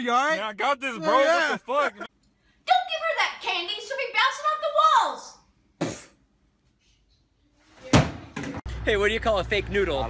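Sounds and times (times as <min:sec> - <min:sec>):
man saying hey: 0:00.0 - 0:02.1
low street rumble: 0:08.7 - 0:10.0.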